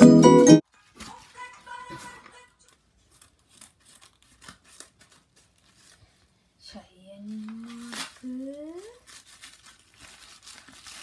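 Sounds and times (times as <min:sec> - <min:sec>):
paper package crinkling: 0:00.7 - 0:06.4, 0:07.2 - 0:11.0.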